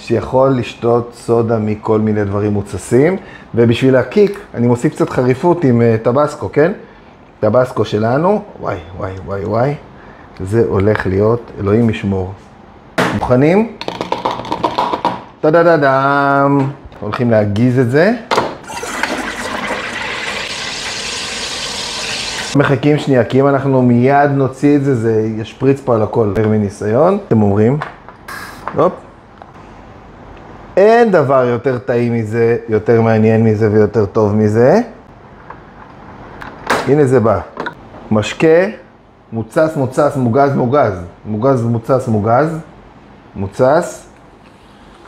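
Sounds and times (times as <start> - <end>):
drink fizzing: 18.6 - 22.6.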